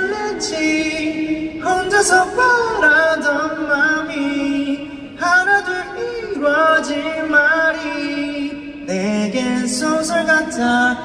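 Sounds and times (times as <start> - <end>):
man singing wordless notes: 0.0 - 11.0.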